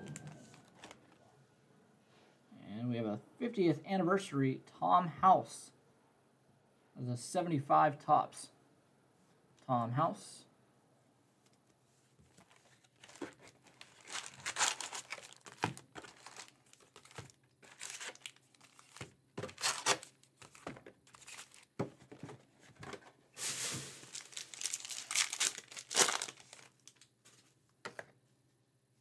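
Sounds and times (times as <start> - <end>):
card wrappers tearing and crinkling: 12.4 - 21.8, 23.4 - 27.1.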